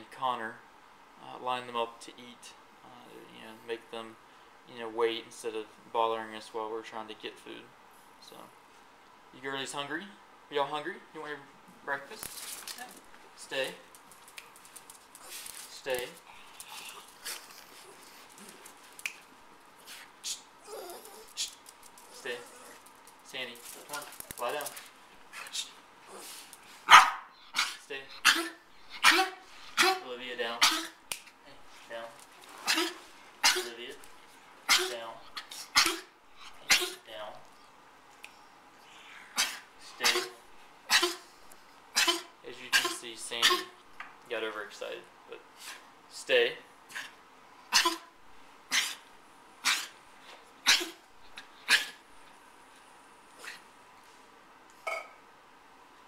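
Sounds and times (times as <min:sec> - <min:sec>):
small dog barking: 0:26.9 - 0:30.0, 0:47.7 - 0:48.0.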